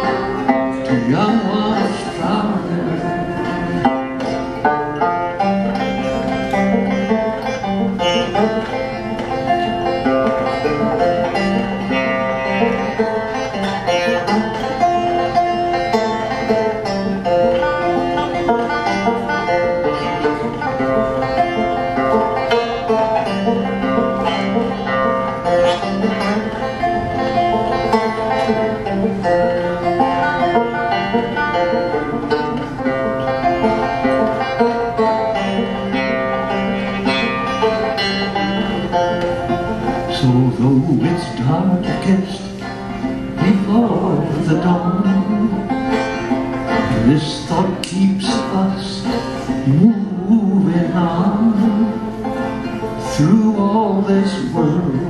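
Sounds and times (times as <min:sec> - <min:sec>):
banjo picking through speakers: 0:00.0 - 0:55.0.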